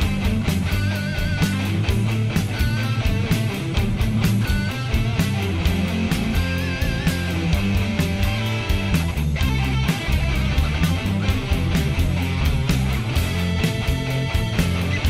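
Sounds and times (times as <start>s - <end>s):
lead guitar held notes with vibrato: 0.0s - 15.0s
rock song with electric guitar: 0.0s - 15.0s.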